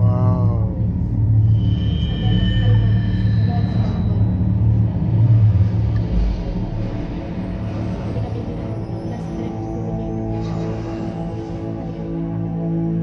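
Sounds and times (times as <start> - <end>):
deep steady rumble: 0.0 - 13.0.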